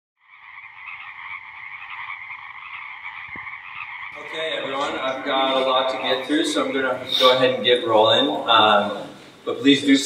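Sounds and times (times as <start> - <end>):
chorus of frogs calling: 0.2 - 7.6.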